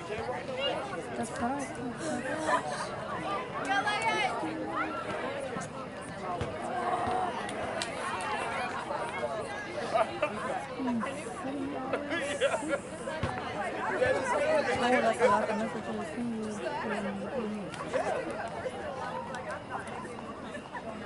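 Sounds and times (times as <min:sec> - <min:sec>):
people chattering: 0:00.0 - 0:21.0.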